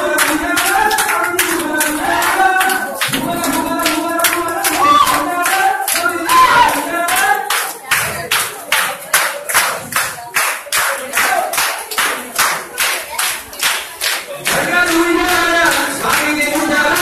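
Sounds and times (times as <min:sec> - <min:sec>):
people singing: 0:00.0 - 0:08.3, 0:14.3 - 0:17.0
people clapping in rhythm: 0:00.0 - 0:17.0.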